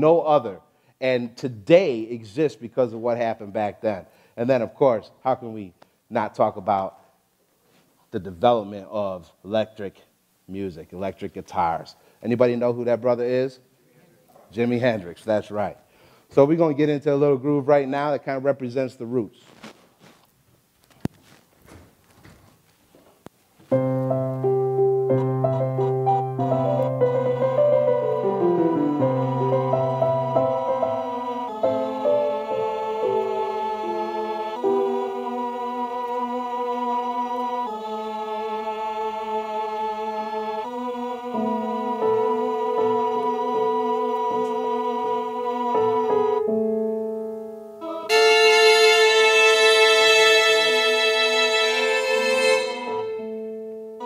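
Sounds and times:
faint stage noise: 0:05.5 - 0:24.4
keyboard sustained chord: 0:23.8 - 0:36.7, 0:40.8 - 0:54.0.

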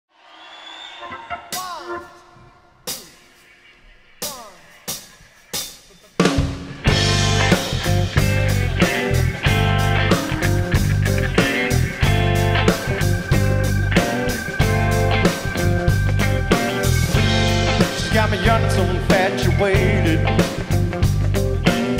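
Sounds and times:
blues-rock band playing: 0:01.0 - 0:21.9
sliding electric guitar notes: 0:06.8 - 0:21.9.

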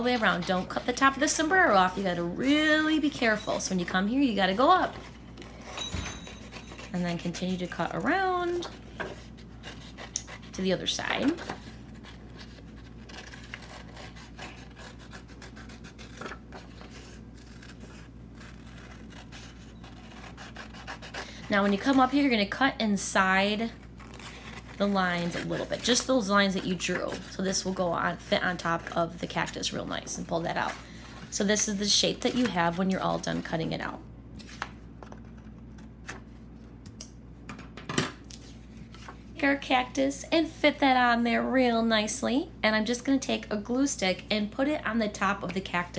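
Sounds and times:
scissors cutting paper: 0:00.0 - 0:05.8, 0:06.4 - 0:22.4, 0:23.5 - 0:30.8, 0:31.6 - 0:33.5
paper rustling: 0:06.4 - 0:22.2, 0:34.4 - 0:36.4.

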